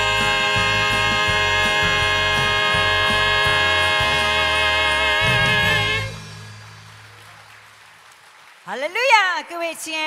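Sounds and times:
male vocal harmony: 0.0s - 6.2s
instrumental backing with pulsing bass: 0.0s - 7.1s.

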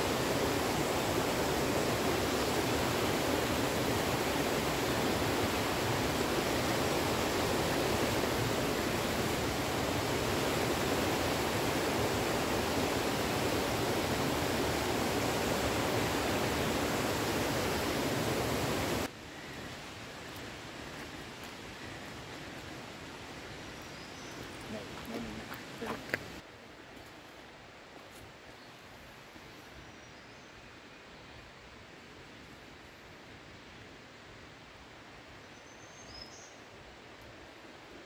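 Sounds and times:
stream rushing over boulders: 0.0s - 28.5s.

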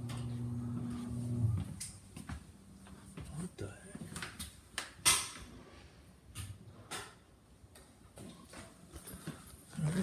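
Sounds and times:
footsteps on hardwood floor: 0.7s - 4.2s.

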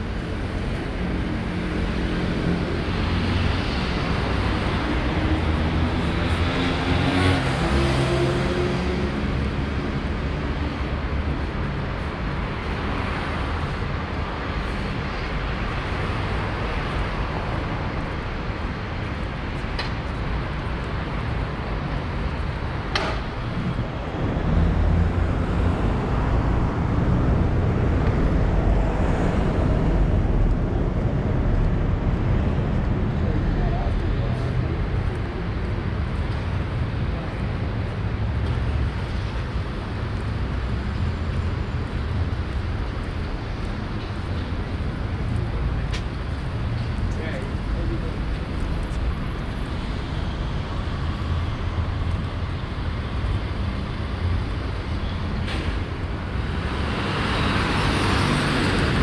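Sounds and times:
passing cars rumbling: 0.0s - 59.0s.

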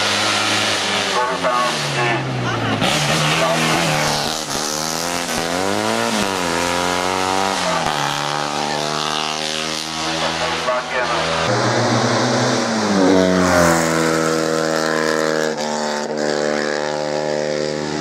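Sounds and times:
car engine revving hard: 0.0s - 18.0s.

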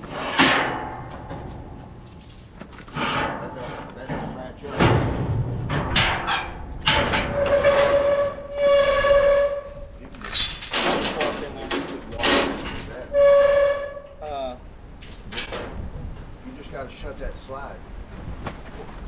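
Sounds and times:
metal gate clanks and rattles: 0.0s - 14.2s, 15.0s - 15.9s
gate high squeals: 6.9s - 10.6s, 12.3s - 14.3s.

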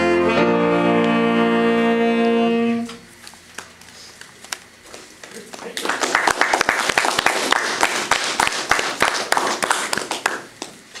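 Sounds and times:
small audience applauding: 4.5s - 11.0s.

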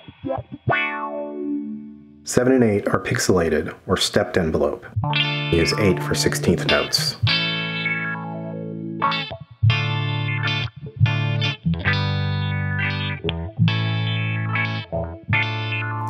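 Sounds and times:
filtered electric guitar: 0.0s - 2.3s, 4.9s - 16.0s.

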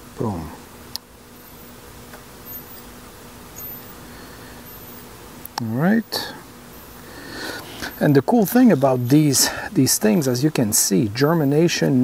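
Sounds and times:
faint low hum: 0.0s - 12.0s
faint small ticks: 0.9s - 2.9s, 4.6s - 5.7s.

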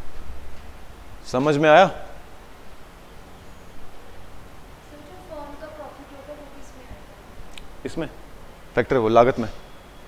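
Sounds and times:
man lecturing: 8.8s - 9.6s.

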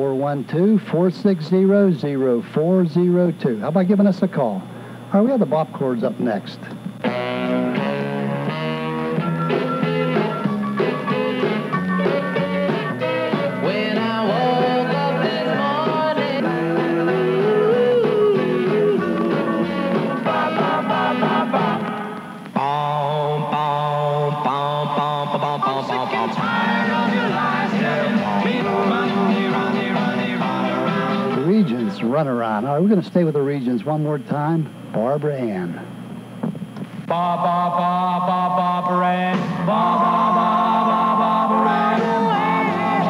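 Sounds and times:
rock and roll song on radio: 0.0s - 4.6s, 5.2s - 35.3s, 36.4s - 43.0s.

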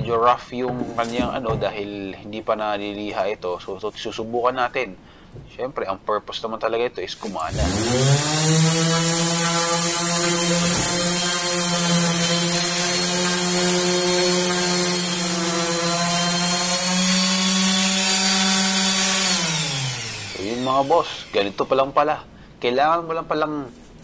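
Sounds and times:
sanding disc hissing on wood: 7.2s - 21.8s
orbital sander motor hum: 7.5s - 21.8s.

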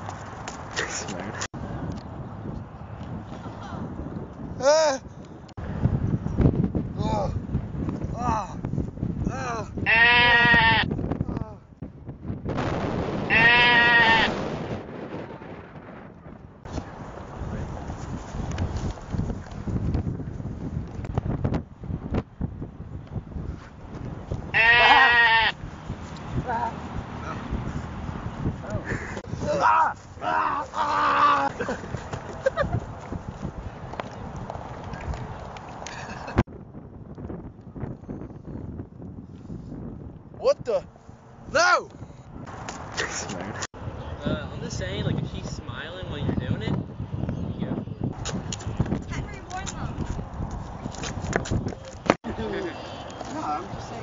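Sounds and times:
sheep bleating: 9.8s - 10.9s, 13.3s - 14.3s, 24.5s - 25.6s.

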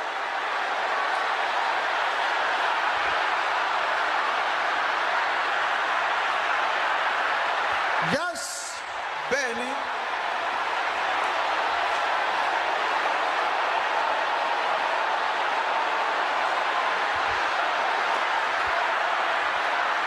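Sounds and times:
congregation praying aloud: 8.0s - 9.9s.

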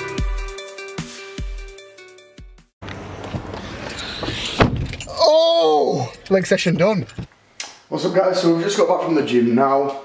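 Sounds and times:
handling noise in car: 2.8s - 5.1s
sharp thump: 4.2s - 5.0s.

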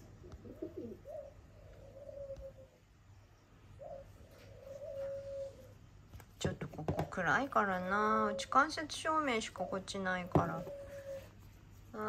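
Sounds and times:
crow cooing calls: 0.4s - 2.8s, 3.8s - 5.8s, 9.6s - 11.4s.

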